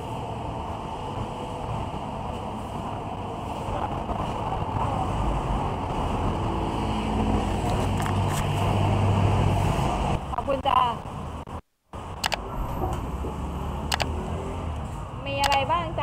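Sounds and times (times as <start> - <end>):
street low rumble: 0.0 - 16.0
voice: 10.3 - 11.0, 15.2 - 16.0.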